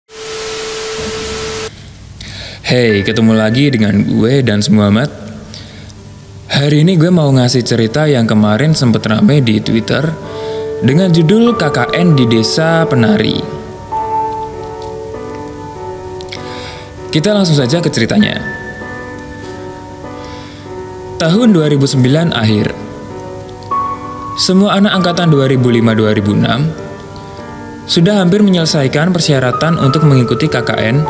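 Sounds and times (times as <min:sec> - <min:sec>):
steady tone: 0:00.1 - 0:01.7
music of sustained held notes: 0:00.1 - 0:01.8, 0:02.7 - 0:31.0
static hiss: 0:00.1 - 0:22.0, 0:22.7 - 0:31.0.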